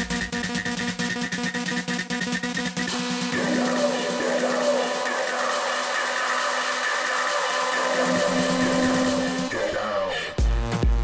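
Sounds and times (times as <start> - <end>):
sustained synth chords: 2.9 - 10.1
dense noise riser: 2.9 - 10.2.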